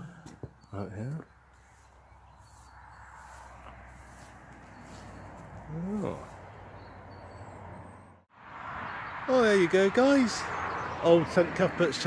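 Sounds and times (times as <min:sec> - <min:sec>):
man saying ooh: 0:05.7 - 0:06.3.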